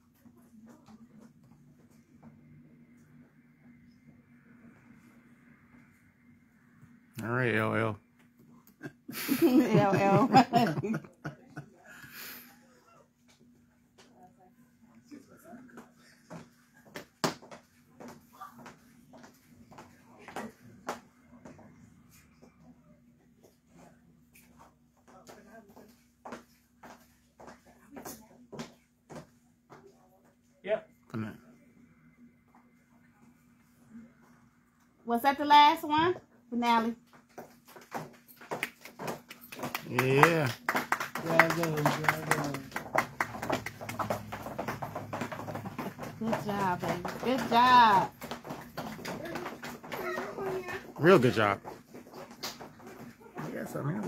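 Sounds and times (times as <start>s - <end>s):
high heels clicking on hard floor: 36.9s - 39.9s, 40.7s - 54.0s
people clapping: 37.6s - 51.6s.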